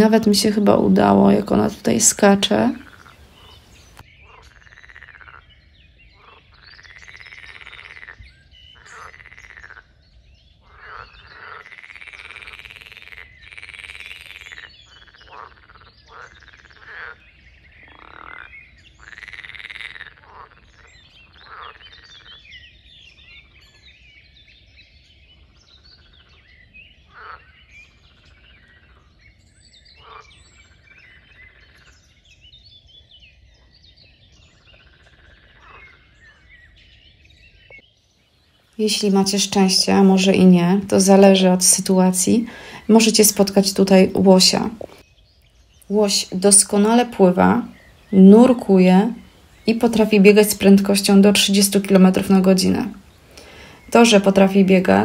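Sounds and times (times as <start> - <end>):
frogs croaking: 0.0 - 23.8, 25.3 - 32.2, 34.4 - 36.8, 37.6 - 45.0, 45.6 - 55.0.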